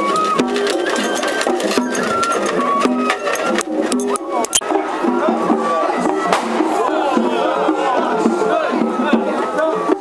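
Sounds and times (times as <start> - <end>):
drums: 0.0 - 10.0.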